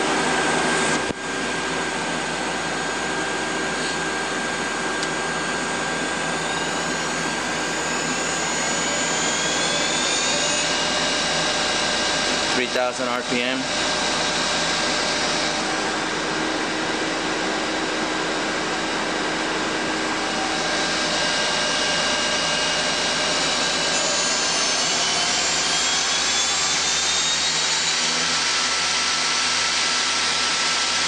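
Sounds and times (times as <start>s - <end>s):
lathe spindle whining: 0.0s - 31.0s.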